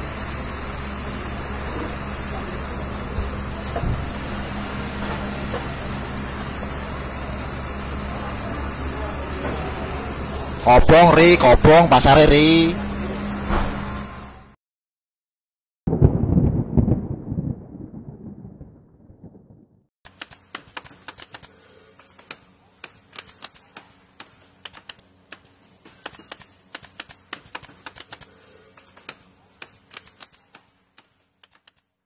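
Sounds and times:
deep boom: 0:15.9 - 0:19.8
typewriter key clacks: 0:20.1 - 0:21.5, 0:22.2 - 0:31.8.

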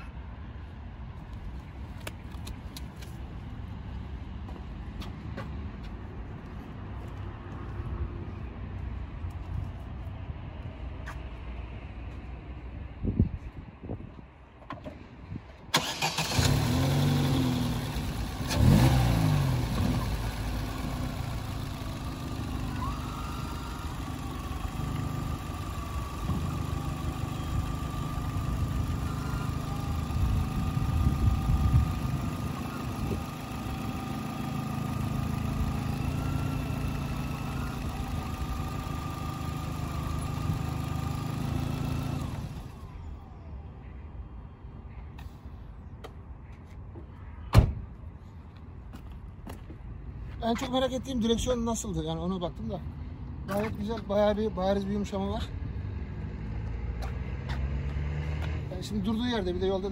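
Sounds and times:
car engine starting and idling: 0:15.6 - 0:43.6
power steering pump whine: 0:15.8 - 0:16.7.

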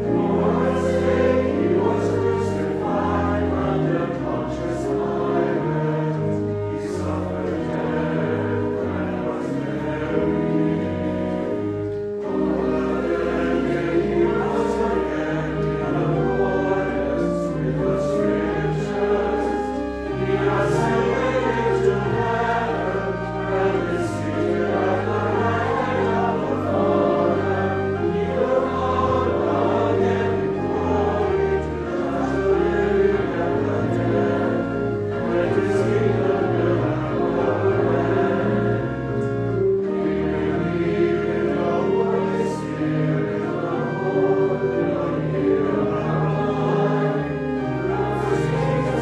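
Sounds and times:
choir singing: 0:00.0 - 0:49.0
organ bass notes: 0:00.0 - 0:49.0.

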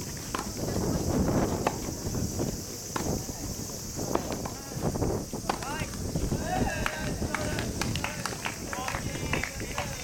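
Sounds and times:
footsteps on court: 0:00.0 - 0:10.0
wind rumbling on microphone: 0:00.0 - 0:10.0
tennis ball strikes: 0:00.2 - 0:00.6, 0:01.6 - 0:02.0, 0:02.9 - 0:03.2, 0:05.4 - 0:06.0.

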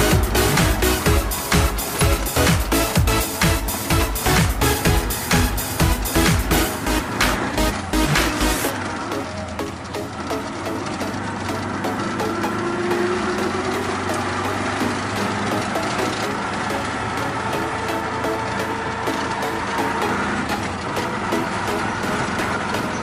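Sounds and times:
electronic dance music: 0:00.0 - 0:23.0
road noise: 0:00.0 - 0:23.0
small engine running: 0:00.0 - 0:23.0.

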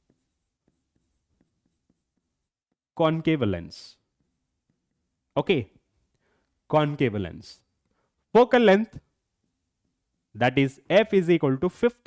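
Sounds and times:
stylus scratching on screen: 0:00.0 - 0:02.9, 0:03.9 - 0:05.3.

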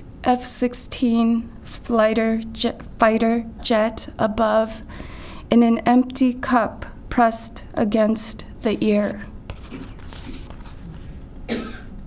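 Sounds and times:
low room noise: 0:00.0 - 0:12.0
short cough: 0:11.5 - 0:12.0.

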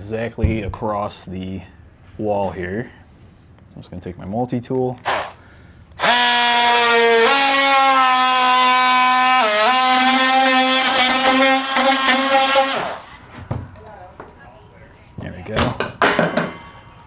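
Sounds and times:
oscillating multi-tool cutting wood: 0:05.0 - 0:05.4, 0:06.0 - 0:13.2.

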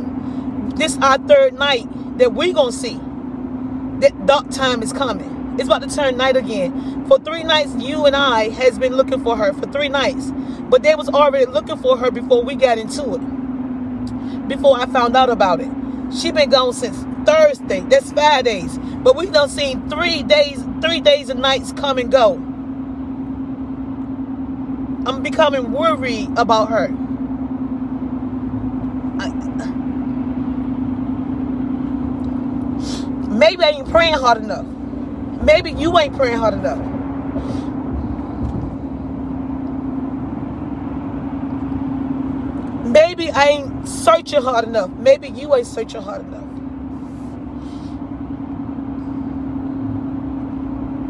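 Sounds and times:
car cabin hum: 0:00.0 - 0:51.0
person sniffing: 0:32.8 - 0:33.1.

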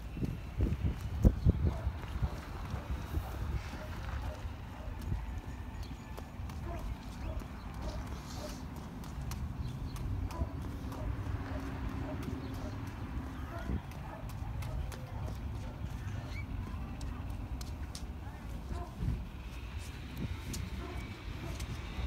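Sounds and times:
toddler footsteps on concrete: 0:00.0 - 0:22.0.

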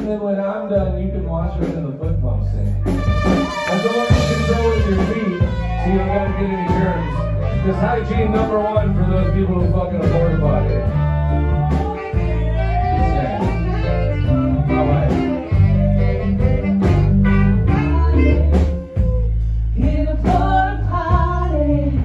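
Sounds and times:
heavy bass line: 0:00.0 - 0:22.0
live band playing: 0:00.0 - 0:22.0
person singing: 0:03.6 - 0:22.0.

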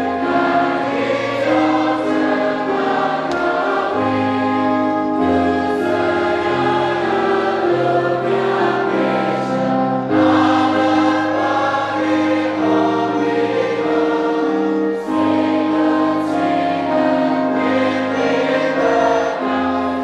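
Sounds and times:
congregation singing a hymn: 0:00.0 - 0:20.0.

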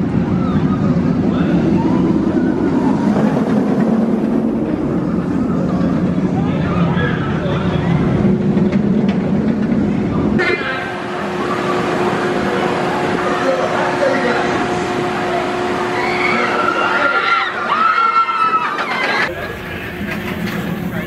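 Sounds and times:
roller coaster rumbling on track: 0:00.0 - 0:21.0.

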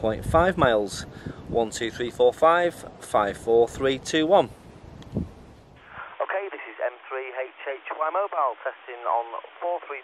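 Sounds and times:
man talking over two-way radio: 0:06.0 - 0:10.0.

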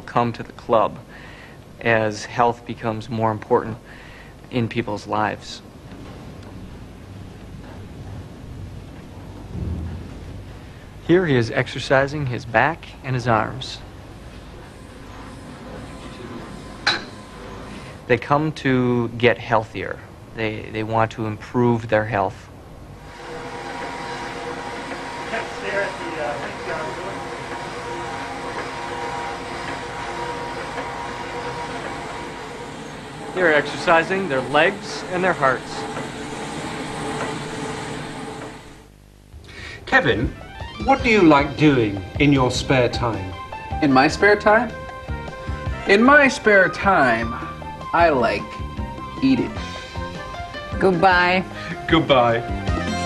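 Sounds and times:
steady hum: 0:00.0 - 0:53.0
low rumbling gym room noise: 0:05.2 - 0:40.6.

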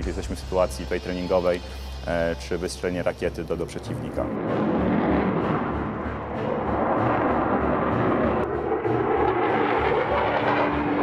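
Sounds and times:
background music drumbeat: 0:00.0 - 0:01.6, 0:04.5 - 0:11.0
jet flying overhead: 0:03.1 - 0:11.0.

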